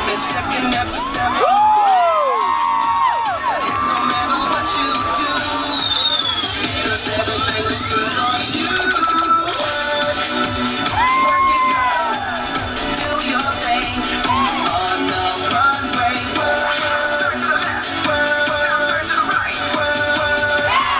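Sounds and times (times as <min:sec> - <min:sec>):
crowd cheering: 0:00.0 - 0:09.3, 0:10.1 - 0:17.9, 0:20.6 - 0:20.9
dance music with steady beat: 0:00.0 - 0:20.9
pitch-sweep effects: 0:10.2 - 0:17.1.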